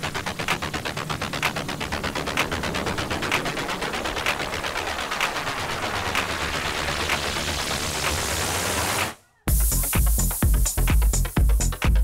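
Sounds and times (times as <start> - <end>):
electronic house beat: 0.0 - 12.0
hi-hat and clap hits: 0.0 - 12.0.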